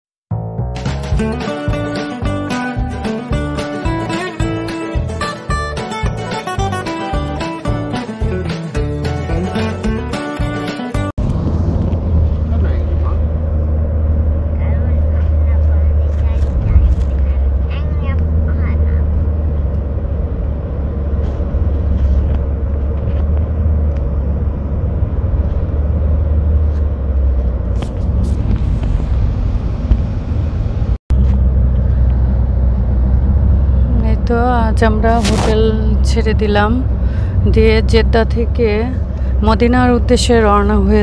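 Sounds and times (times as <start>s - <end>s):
car engine and tyres rumbling: 0.4s - 41.0s.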